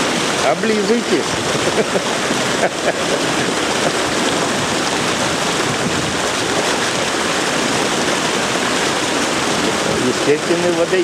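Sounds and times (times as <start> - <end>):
fish splashing in shallow water: 0.0 - 11.0.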